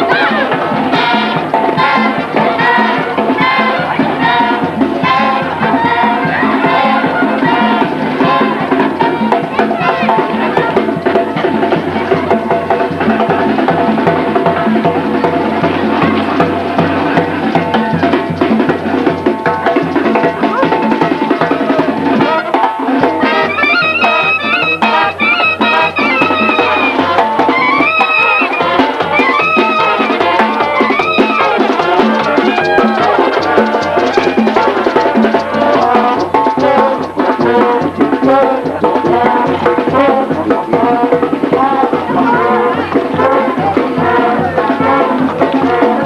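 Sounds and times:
bass drum: 0:00.0 - 0:46.0
trumpets: 0:00.0 - 0:46.0
sousaphone: 0:20.3 - 0:37.7
bright horn notes: 0:22.1 - 0:36.2.

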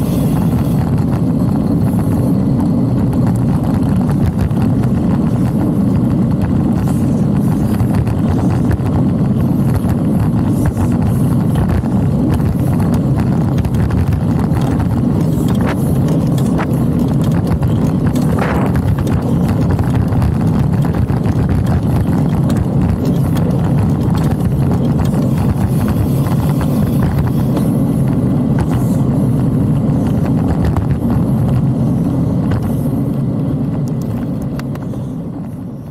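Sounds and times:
bike tyres on asphalt: 0:00.0 - 0:35.9
wind buffeting microphone: 0:00.0 - 0:35.9
small clicks and rattles: 0:00.1 - 0:35.0.

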